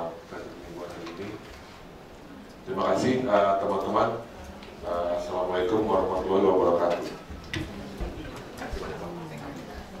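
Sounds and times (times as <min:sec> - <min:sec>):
low indistinct voices: 0:00.0 - 0:10.0.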